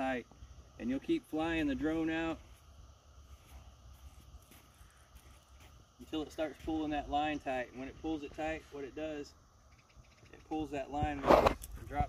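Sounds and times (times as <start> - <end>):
soft footsteps on sand: 2.3 - 7.0.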